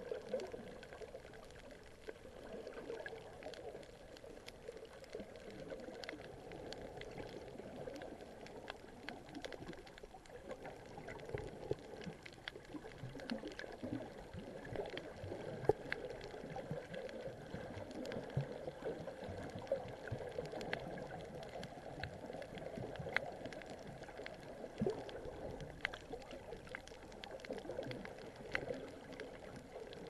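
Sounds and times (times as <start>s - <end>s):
muffled underwater water wash: 0.0s - 30.0s
sharp underwater clicks: 0.1s - 30.0s.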